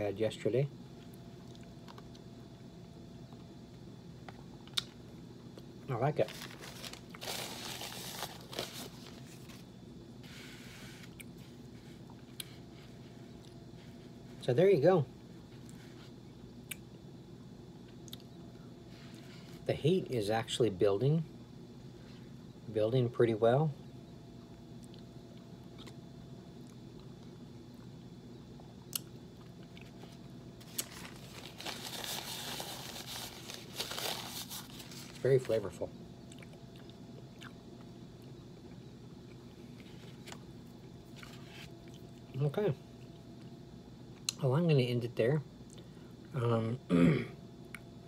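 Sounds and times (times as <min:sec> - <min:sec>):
faint steady hum: 0:00.0 - 0:48.0
paper napkin rustling: 0:06.2 - 0:11.1, 0:30.6 - 0:35.6
person chewing: 0:25.7 - 0:26.0, 0:36.3 - 0:40.4.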